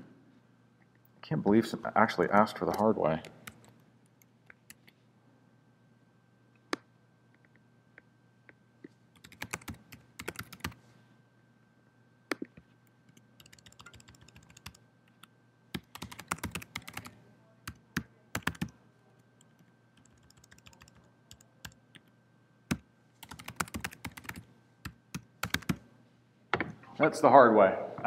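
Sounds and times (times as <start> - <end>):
laptop keyboard typing: 3.3 - 3.8, 4.5 - 4.9, 9.2 - 10.8, 12.3 - 18.8, 19.4 - 22.1, 22.7 - 25.8.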